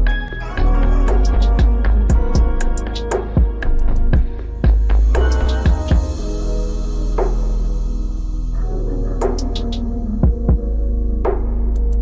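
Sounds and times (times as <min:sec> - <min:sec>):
low drone: 0:00.0 - 0:12.0
light high percussion hits: 0:01.1 - 0:10.7.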